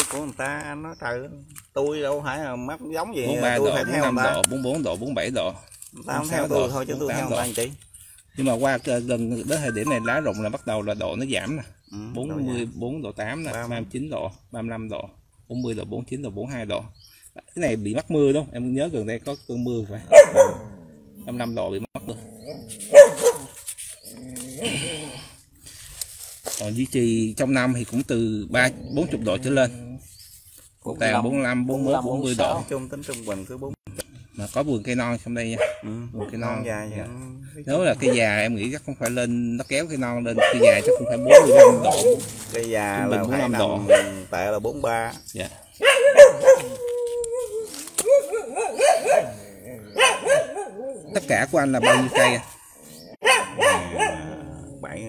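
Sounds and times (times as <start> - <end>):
short rising and falling calls: 9.6 - 10.8
dog barking: 20.0 - 20.8, 22.9 - 23.6, 35.5 - 36.9, 40.3 - 42.3, 43.8 - 44.3, 45.8 - 46.8, 48.0 - 51.0, 51.7 - 52.6, 53.2 - 54.5.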